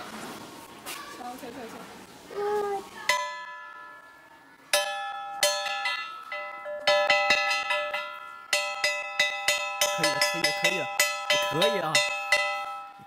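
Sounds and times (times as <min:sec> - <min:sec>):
hammer striking metal bell: 0:04.8 - 0:13.0.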